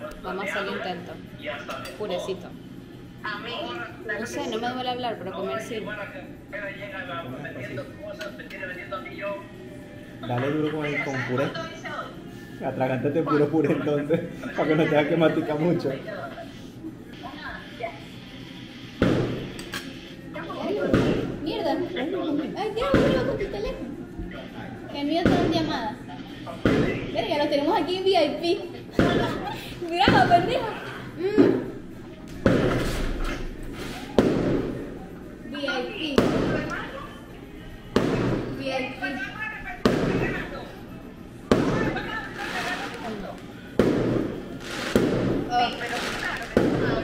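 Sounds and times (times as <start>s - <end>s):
fireworks bangs with rumble: 19.0s - 19.4s, 26.6s - 27.1s, 39.8s - 40.3s, 41.5s - 42.6s, 43.8s - 47.0s.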